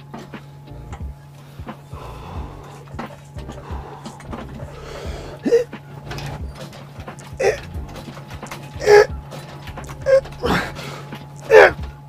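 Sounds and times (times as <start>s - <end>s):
steady low hum: 0.0s - 12.0s
man exhaling with grunt: 7.4s - 7.6s, 8.8s - 9.1s, 10.1s - 11.8s.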